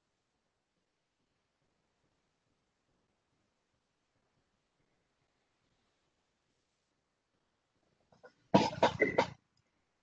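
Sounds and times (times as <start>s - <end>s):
man coughing: 8.6s - 9.4s.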